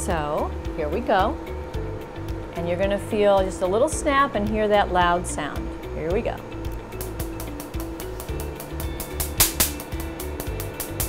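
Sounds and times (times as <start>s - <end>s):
background music with bass line: 0.0s - 11.0s
laser pulses snapping: 7.0s - 11.0s.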